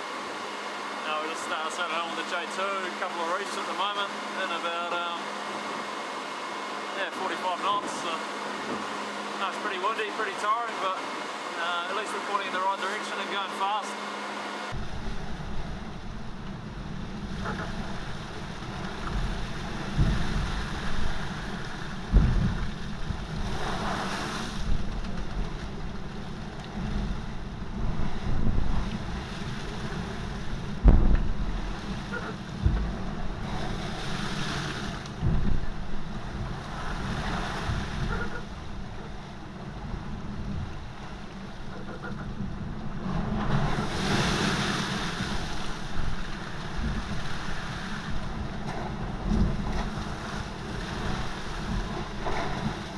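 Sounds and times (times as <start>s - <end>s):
seawater rushing over deck: 0.0s - 52.9s
wind buffeting microphone: 14.8s - 34.3s, 34.9s - 52.9s
sharp low thumps: 22.0s - 23.3s, 30.7s - 32.0s, 32.6s - 33.5s, 35.2s - 36.0s.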